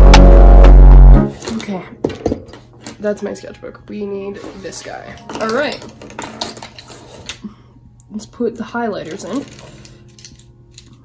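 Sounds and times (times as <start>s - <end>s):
electronic music sting: 0.0s - 1.4s.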